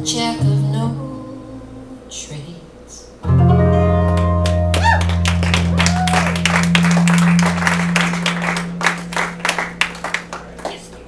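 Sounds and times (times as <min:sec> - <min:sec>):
guitar note ringing: 0:03.2 - 0:11.0
audience clapping: 0:04.1 - 0:11.0.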